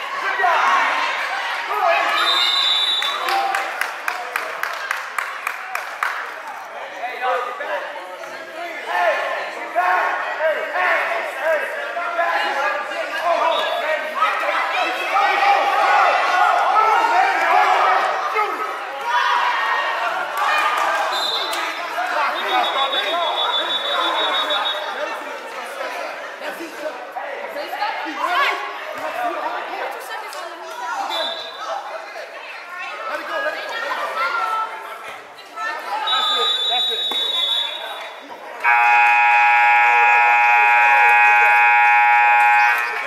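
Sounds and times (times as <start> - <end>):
players and spectators voices: 0.0 - 43.0
scoreboard buzzer blast: 38.7 - 43.0.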